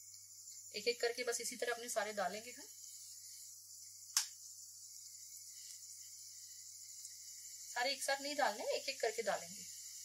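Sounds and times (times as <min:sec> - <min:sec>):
chips sizzling in hot oil: 0:00.0 - 0:10.0
sharp click: 0:04.1 - 0:04.4.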